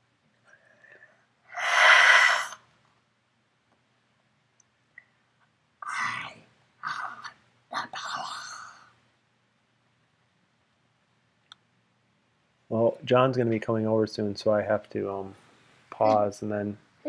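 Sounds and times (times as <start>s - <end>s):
soft breathy sounds: 0.3s - 2.7s, 5.8s - 9.1s
person breathing out hard: 0.5s - 2.6s.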